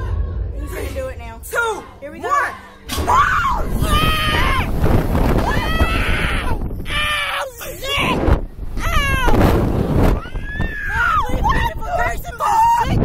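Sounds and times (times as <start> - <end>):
women screaming: 3.1 - 4.8, 5.4 - 8.2, 8.8 - 9.4, 10.2 - 11.8
wind rumbling on microphone: 3.1 - 13.0.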